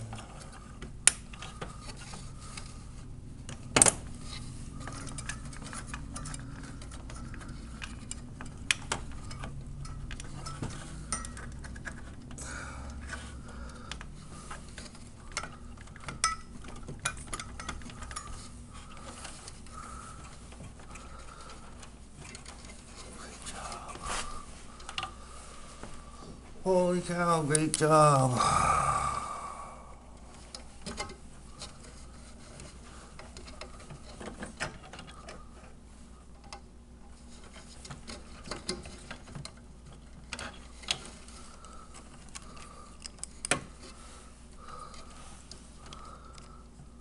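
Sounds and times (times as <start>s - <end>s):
steady low hum: 0.0s - 47.0s
plastic and metal parts clicking: 37.4s - 43.9s.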